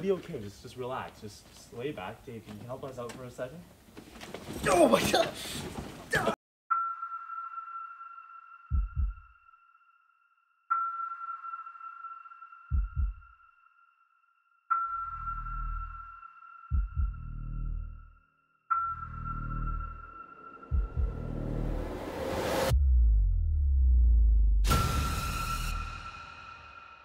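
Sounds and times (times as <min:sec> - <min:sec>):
low double thumps: 0:16.7 - 0:18.0, 0:20.7 - 0:24.8
high sonar-like ping: 0:18.7 - 0:21.8.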